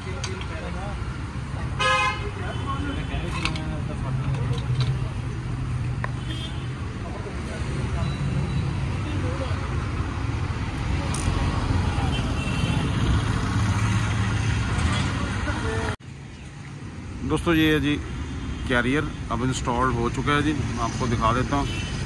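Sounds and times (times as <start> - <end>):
street traffic: 0.0 - 22.0.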